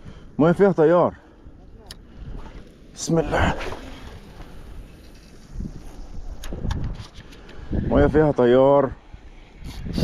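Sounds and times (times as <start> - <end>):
faint wind: 0.0 - 10.0.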